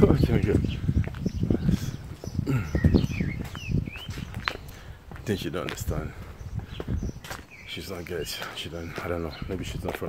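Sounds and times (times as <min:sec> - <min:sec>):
footsteps on pavement: 0:00.0 - 0:10.0
high bird chirps: 0:00.5 - 0:04.9, 0:06.3 - 0:09.6.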